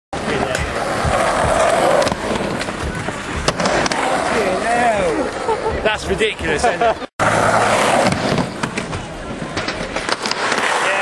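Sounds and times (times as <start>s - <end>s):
skateboard clacks: 0.2s - 4.4s
skateboard wheels rolling: 0.2s - 11.0s.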